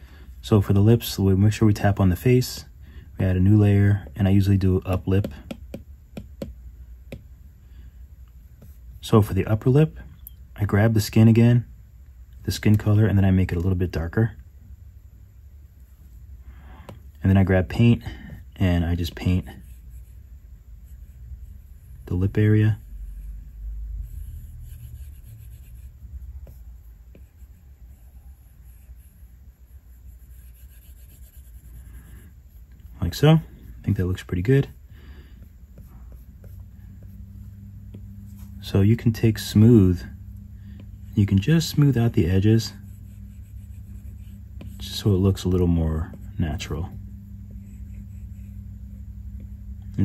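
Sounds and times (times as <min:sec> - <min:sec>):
low room rumble: 0:00.0 - 0:50.0
stylus tapping on glass: 0:05.2 - 0:07.2
stylus rubbing on glass screen: 0:19.0 - 0:34.8, 0:35.4 - 0:46.4.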